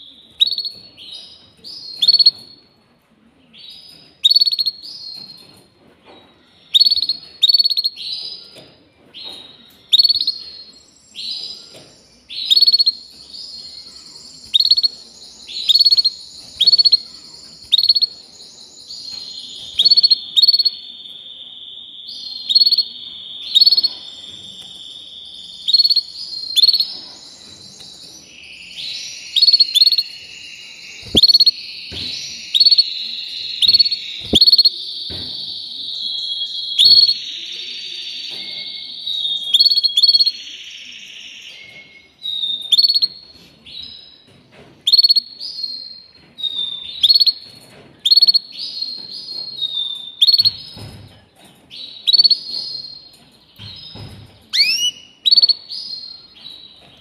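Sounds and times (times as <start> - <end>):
canary singing trills: 0.0 - 2.8, 3.5 - 57.0.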